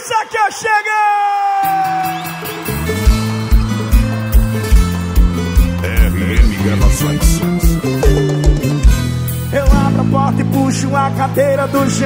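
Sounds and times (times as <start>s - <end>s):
live band music: 2.0s - 12.0s.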